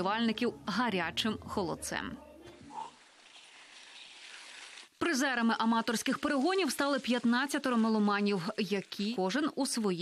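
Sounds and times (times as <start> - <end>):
bike tyres rolling on mud: 2.9 - 9.5.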